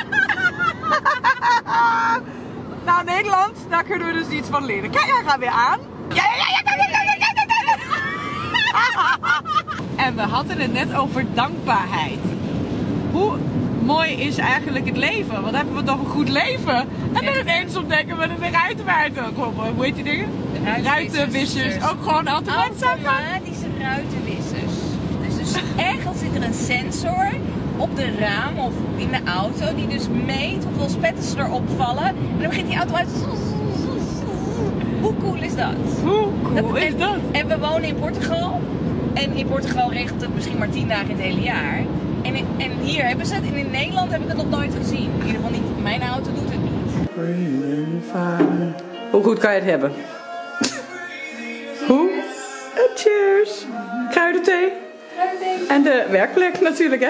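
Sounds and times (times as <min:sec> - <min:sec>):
car road and engine noise: 0:00.0 - 0:50.0, 0:50.7 - 0:57.0.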